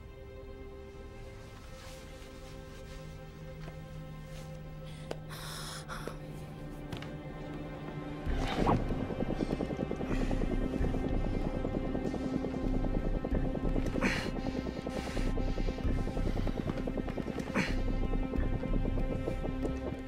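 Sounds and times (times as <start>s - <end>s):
tense film score: 0.0s - 20.0s
noisy swells: 8.0s - 20.0s.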